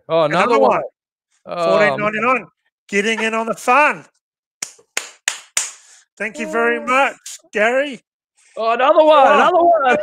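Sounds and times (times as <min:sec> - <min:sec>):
person clapping hands: 0:04.6 - 0:06.0.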